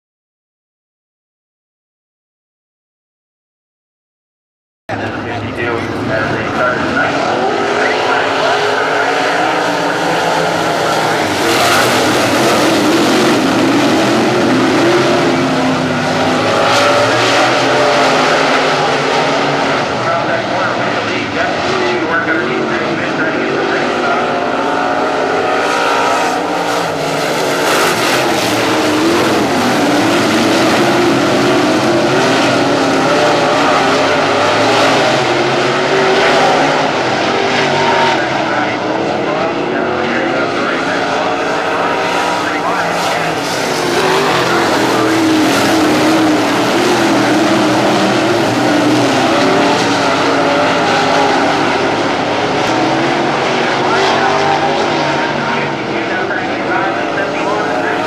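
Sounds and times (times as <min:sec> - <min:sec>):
race car engines: 0:04.9 - 0:58.0.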